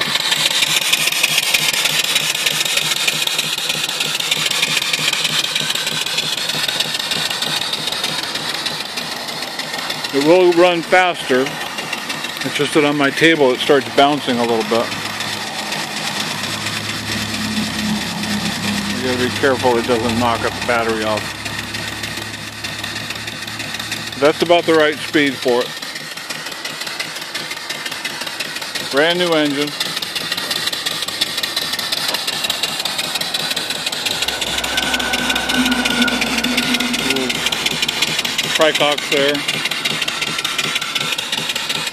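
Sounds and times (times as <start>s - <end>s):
exhaust steam hissing: 0.0s - 41.9s
steam engine exhaust beat: 0.0s - 41.9s
alternator humming: 6.4s - 25.4s, 29.8s - 41.1s
steady tone: 14.4s - 25.4s, 31.0s - 40.4s.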